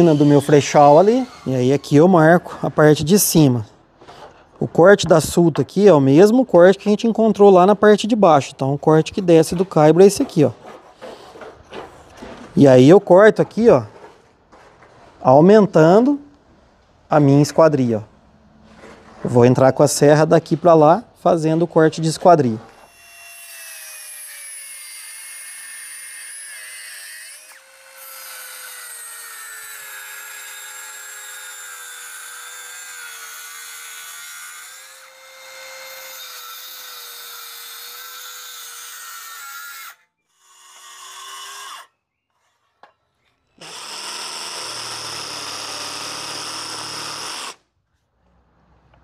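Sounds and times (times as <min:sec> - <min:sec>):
circular saw cutting wood: 0:00.0 - 0:03.3, 0:22.8 - 0:42.0, 0:43.6 - 0:47.6.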